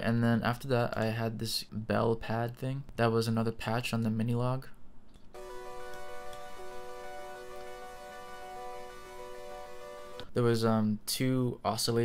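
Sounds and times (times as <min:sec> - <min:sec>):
synth bell chord: 0:05.4 - 0:10.2.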